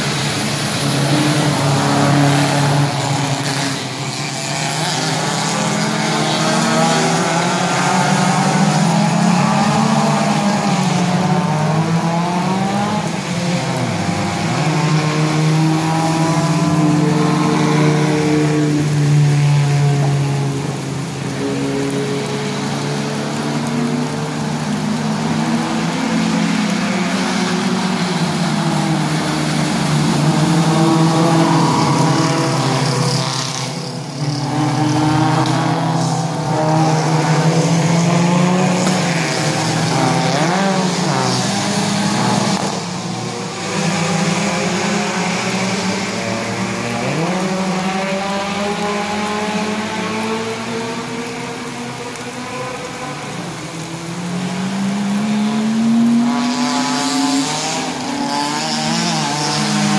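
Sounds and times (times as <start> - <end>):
race cars passing at speed: 0.0 - 59.9.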